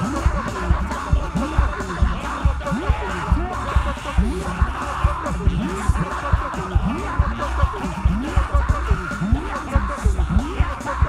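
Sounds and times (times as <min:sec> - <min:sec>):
church music with drum beat: 0:00.0 - 0:11.0
congregation praying aloud: 0:00.0 - 0:11.0.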